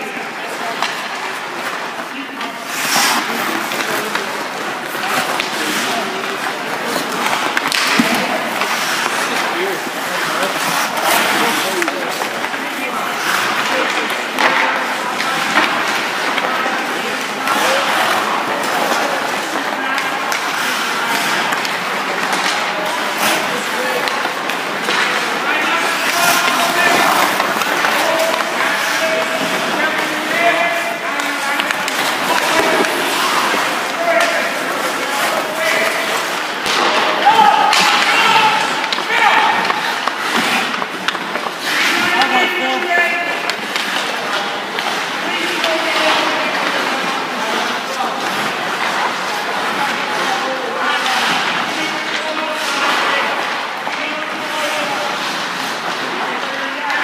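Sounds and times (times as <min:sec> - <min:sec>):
indistinct voices: 0:00.0 - 0:57.0
skate blades scraping on ice: 0:00.2 - 0:57.0
stick hitting puck: 0:00.5 - 0:57.0.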